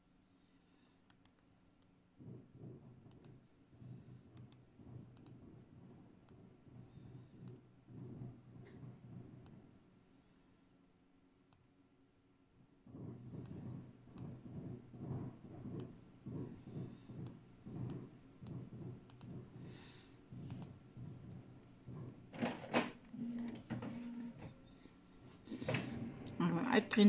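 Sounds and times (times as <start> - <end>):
low uneven rumble: 23.2 - 27.0.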